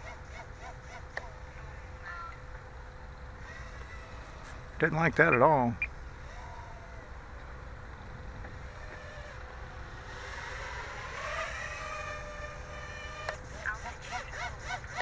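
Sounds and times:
quadcopter motors whining: 0.0s - 15.0s.

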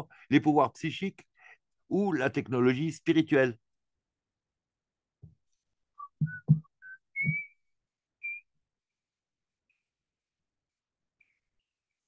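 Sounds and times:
person whistling rising notes: 6.0s - 8.5s
soft low thumps: 6.2s - 7.5s.

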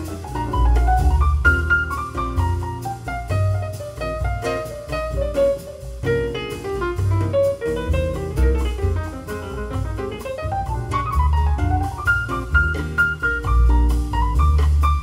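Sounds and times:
piano notes: 0.0s - 15.0s
walking double bass: 0.0s - 15.0s.

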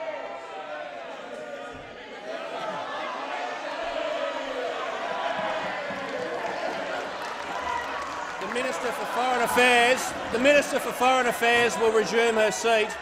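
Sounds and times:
murmur of overlapping voices: 0.0s - 13.0s.

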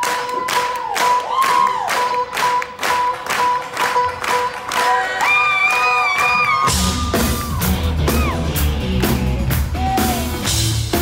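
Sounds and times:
audience clapping in time: 0.0s - 6.7s.

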